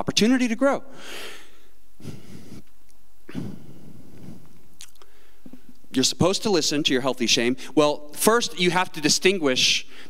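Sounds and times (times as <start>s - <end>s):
soft breaths: 1.0s - 5.8s
mouth clicks: 4.6s - 5.8s.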